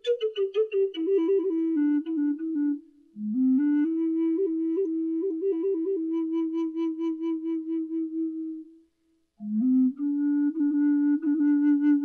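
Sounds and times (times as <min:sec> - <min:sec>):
wooden flute long note: 0:00.0 - 0:08.8, 0:09.4 - 0:12.0.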